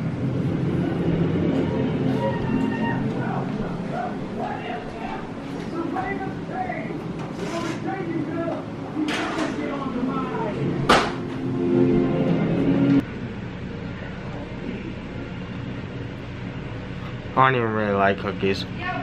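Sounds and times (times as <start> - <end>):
steady low hum: 0.0 - 19.0.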